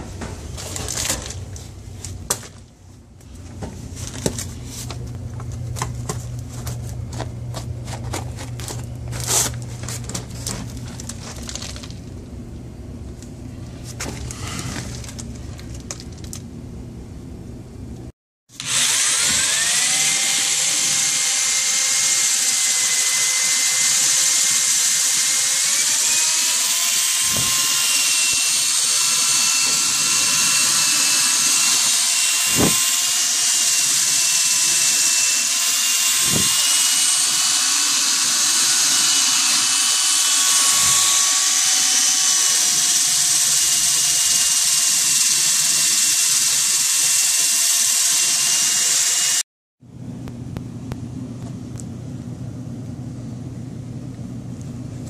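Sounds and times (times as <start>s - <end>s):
power drill motor whine: 18.6s - 49.4s.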